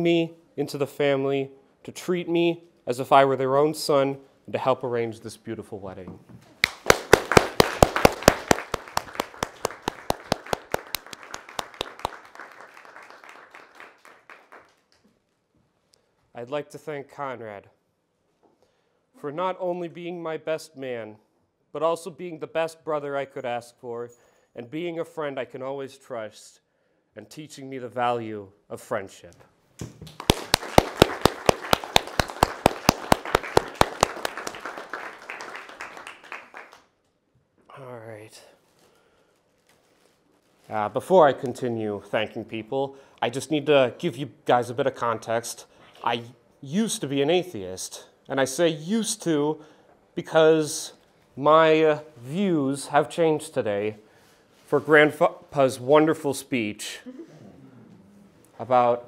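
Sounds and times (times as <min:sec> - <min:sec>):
crowd applauding: 0:06.6 - 0:14.9, 0:30.1 - 0:36.8
loud claps close by: 0:06.6 - 0:15.0, 0:30.0 - 0:36.9.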